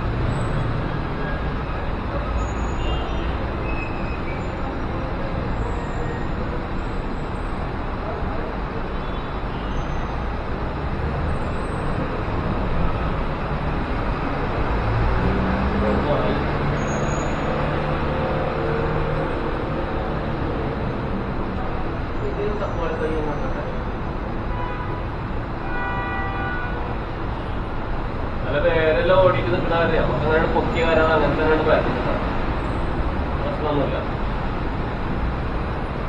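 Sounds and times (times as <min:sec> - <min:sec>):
road traffic noise: 0:00.0 - 0:36.0.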